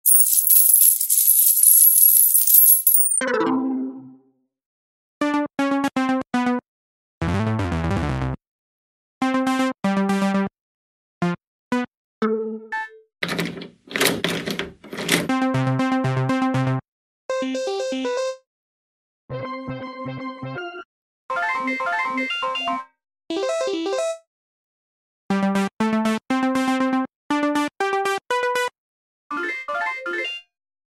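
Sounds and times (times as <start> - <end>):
coins jingling out of slot machine: 0.0 - 3.2, 13.2 - 15.3.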